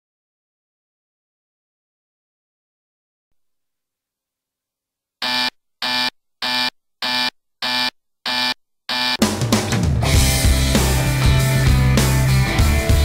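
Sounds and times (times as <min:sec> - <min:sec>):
digital alarm clock beeping: 0:05.2 - 0:09.2
rock band with drum kit: 0:09.2 - 0:13.0.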